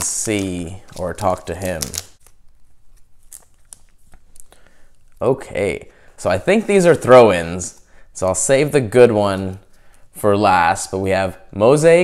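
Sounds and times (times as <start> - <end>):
paper and plastic packaging rustling: 0.0 - 4.5.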